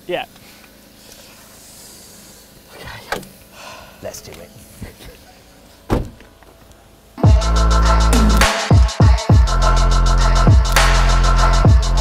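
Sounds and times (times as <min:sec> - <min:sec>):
outdoor background noise: 0:00.0 - 0:07.2.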